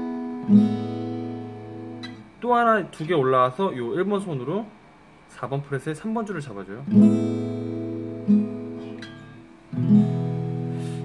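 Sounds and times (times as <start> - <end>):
acoustic guitar chords and notes: 0.0 - 4.1, 6.8 - 11.0.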